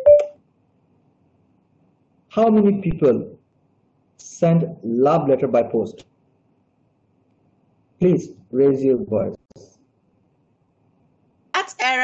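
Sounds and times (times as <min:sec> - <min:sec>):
two-tone electronic beep: 0:00.0 - 0:00.4.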